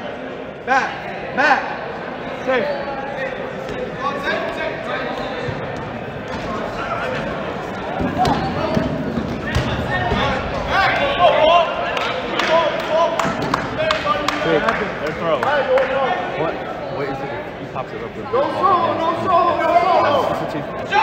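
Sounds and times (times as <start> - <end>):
players shouting: 2.5 - 16.7
dodgeballs thudding: 3.6 - 14.4.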